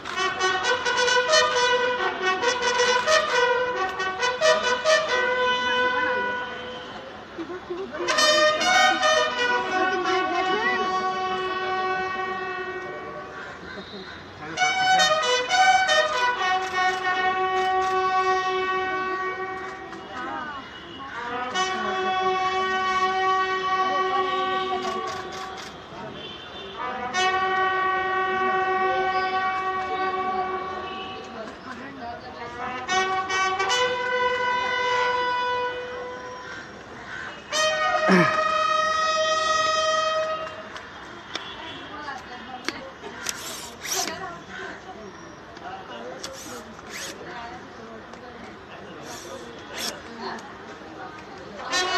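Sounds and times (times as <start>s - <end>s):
bugles playing slow call: 8.1s - 14.0s, 14.6s - 19.9s, 26.8s - 30.6s, 37.5s - 40.6s.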